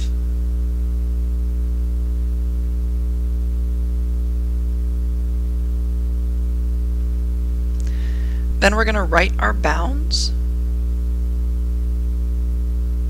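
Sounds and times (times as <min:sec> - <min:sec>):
electrical mains hum: 0:00.0 - 0:13.0.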